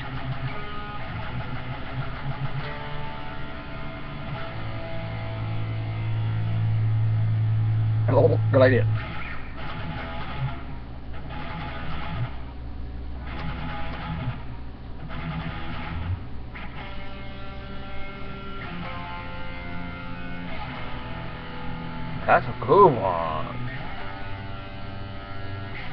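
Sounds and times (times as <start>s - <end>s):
electric guitar playing: 0.0s - 25.9s.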